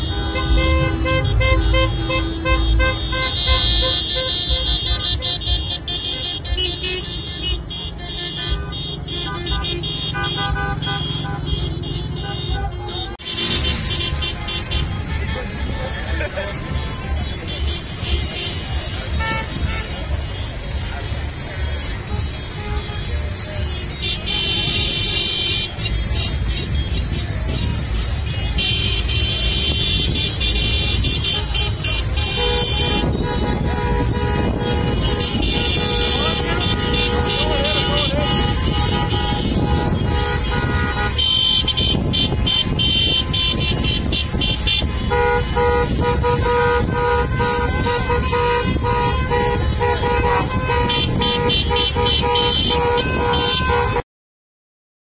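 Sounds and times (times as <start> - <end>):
car horns honking: 0.0 - 54.0
low rumble of traffic: 0.0 - 54.0.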